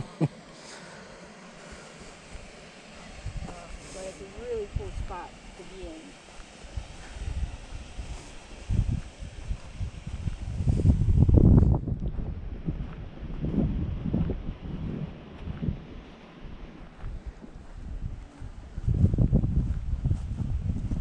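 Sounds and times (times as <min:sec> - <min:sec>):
wind buffeting microphone: 0:01.6 - 0:06.0, 0:06.7 - 0:21.0.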